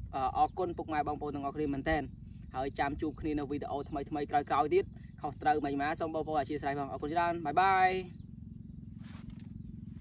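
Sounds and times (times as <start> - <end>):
motorcycle engine idling: 0.0 - 10.0
faint rustle: 9.0 - 10.0.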